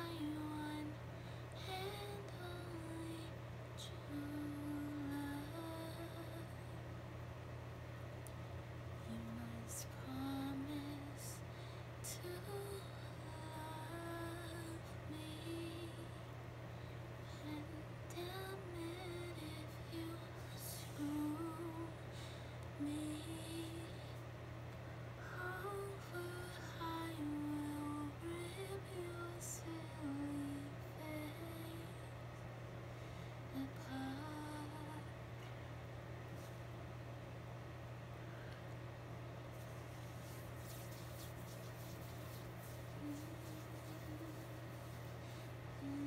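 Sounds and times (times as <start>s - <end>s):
steady low hum: 0.0s - 46.0s
woman humming softly: 40.2s - 46.0s.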